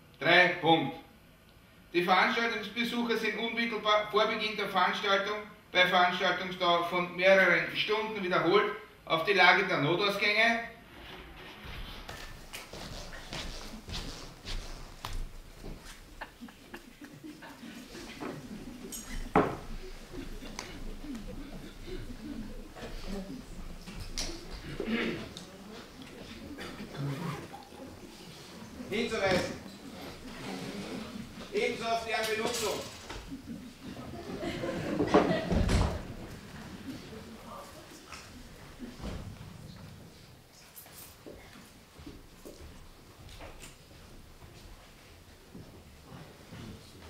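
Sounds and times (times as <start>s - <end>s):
rustling: 10.8s - 47.0s.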